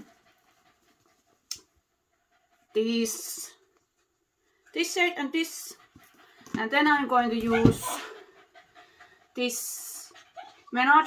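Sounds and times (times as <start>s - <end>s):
dog panting: 0.0s - 11.0s.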